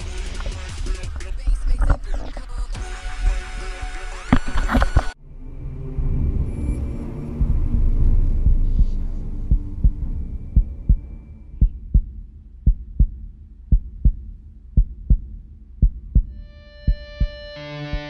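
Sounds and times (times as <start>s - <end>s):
low rumble: 0.0s - 17.4s
heartbeat thumps: 6.3s - 18.0s.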